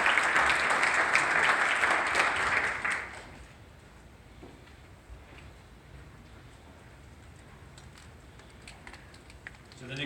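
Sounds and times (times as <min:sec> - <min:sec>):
footsteps and shuffling in a hall: 0:03.0 - 0:10.0.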